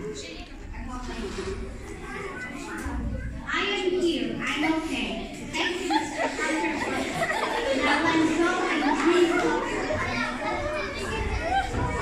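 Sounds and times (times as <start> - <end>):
children talking: 0.0 - 12.0.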